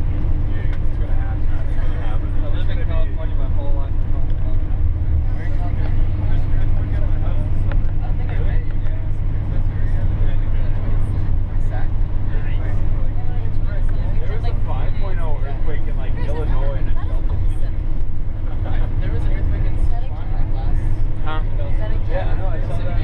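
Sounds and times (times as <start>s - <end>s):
bus engine and tyres droning: 0.0s - 23.0s.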